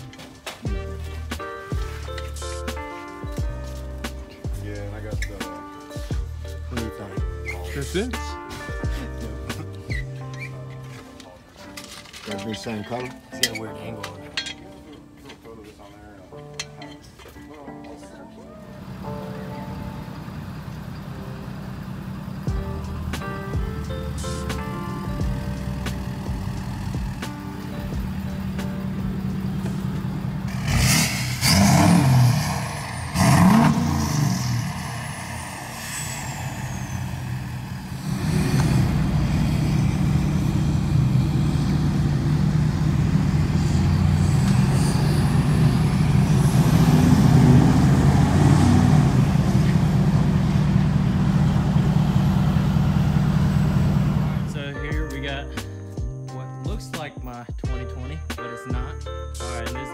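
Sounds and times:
truck pulling away: 0:18.6 - 0:54.8
pickup truck engine idling: 0:18.8 - 0:54.6
engine revving sharply: 0:28.4 - 0:54.6.

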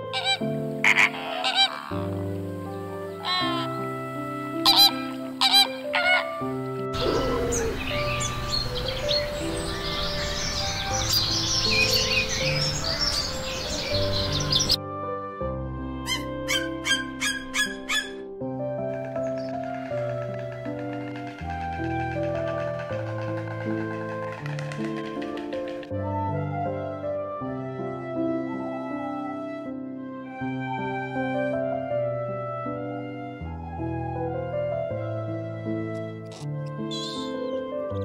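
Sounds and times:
flamingos honking: 0:00.0 - 0:10.5
soft background music: 0:00.0 - 0:38.0
short evenly repeated calls: 0:00.1 - 0:02.2, 0:04.6 - 0:06.4.

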